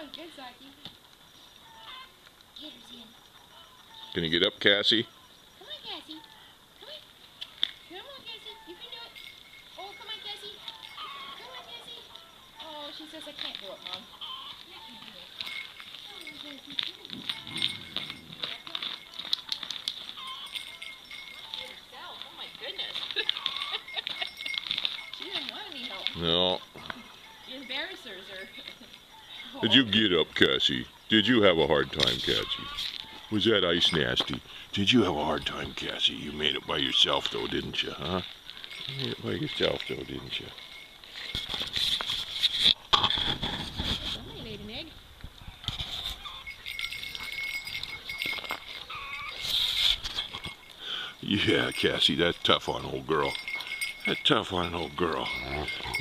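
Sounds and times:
dog yelping: 10.1s - 12.1s, 22.5s - 25.5s, 45.5s - 50.4s, 55.1s - 56.0s
claws scrabbling clicks: 15.4s - 21.8s, 22.5s - 26.2s
dog whining: 48.6s - 50.4s, 55.1s - 56.0s.

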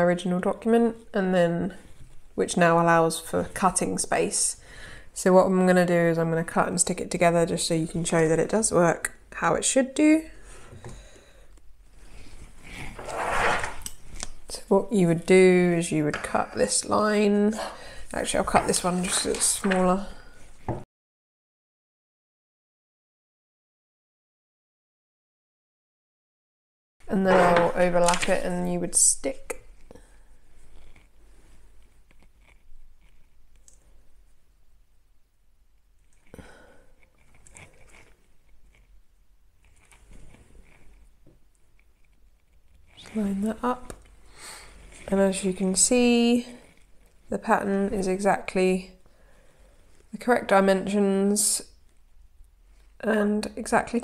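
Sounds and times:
paper rustling: 18.4s - 20.1s, 27.2s - 28.5s.

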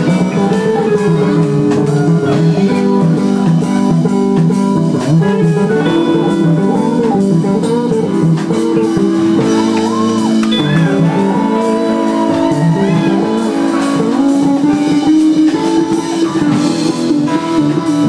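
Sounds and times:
electric guitar lead bending notes: 0.0s - 18.0s
live band jamming: 0.0s - 18.0s.

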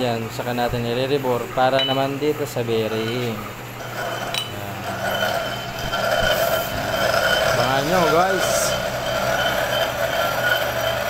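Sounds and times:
metal lathe humming and whining: 0.3s - 11.0s.

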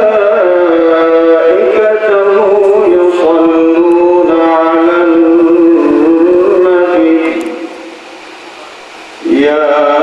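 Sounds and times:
man chanting into a microphone: 0.0s - 8.0s, 9.2s - 10.0s.

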